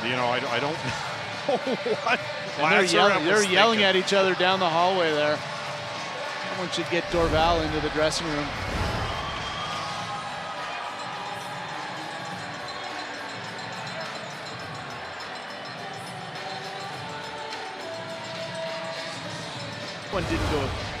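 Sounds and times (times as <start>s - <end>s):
crowd noise: 0.0s - 19.1s, 20.0s - 21.0s.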